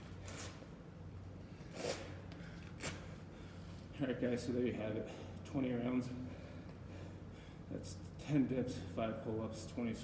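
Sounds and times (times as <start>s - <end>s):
steady low hum: 0.0s - 10.0s
man breathing hard: 2.3s - 3.9s, 6.2s - 7.7s.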